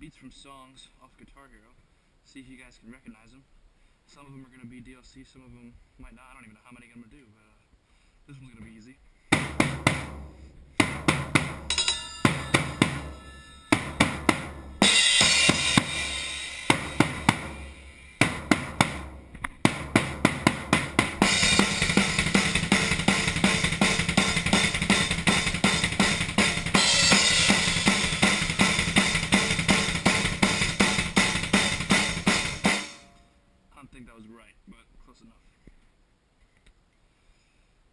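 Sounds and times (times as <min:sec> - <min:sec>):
drum kit playing: 0:09.4 - 0:33.2.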